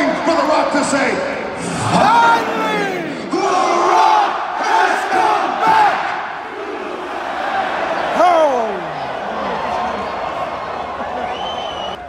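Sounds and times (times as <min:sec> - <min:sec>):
crowd roar: 0:00.0 - 0:12.0
crowd chanting: 0:01.4 - 0:11.9.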